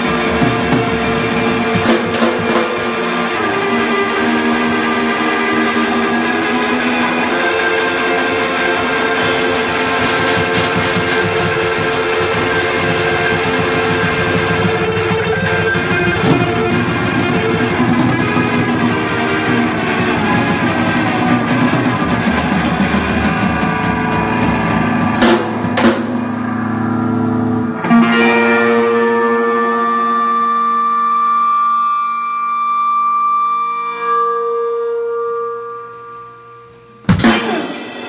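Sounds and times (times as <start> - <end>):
drum and cymbal hits: 0.0 - 26.8, 37.0 - 38.0
live band playing reggae: 0.0 - 31.6, 37.1 - 38.0
held guitar note ringing: 11.7 - 31.6.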